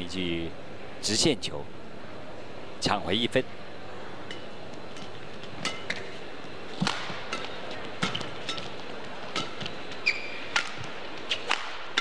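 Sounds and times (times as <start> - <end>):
court shoes squeaking: 4.2 - 12.0
racket hitting shuttlecock: 4.3 - 6.1, 6.7 - 12.0.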